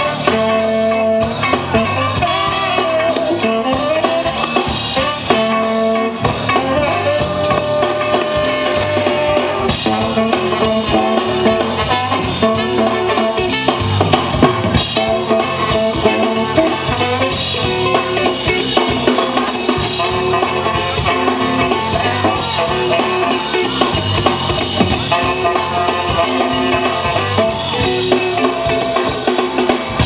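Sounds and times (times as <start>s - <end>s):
drum kit groove: 0.0s - 30.0s
funk band playing: 0.0s - 30.0s
guitar: 0.0s - 30.0s
trumpet and trombone horn lines: 0.0s - 30.0s.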